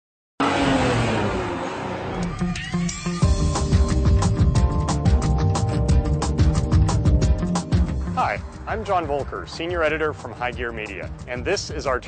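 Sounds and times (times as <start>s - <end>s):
car driving past: 0.4s - 3.2s.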